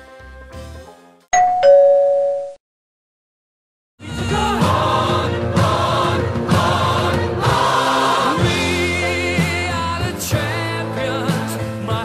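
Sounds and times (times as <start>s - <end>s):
two-tone doorbell chime: 1.3s - 2.6s.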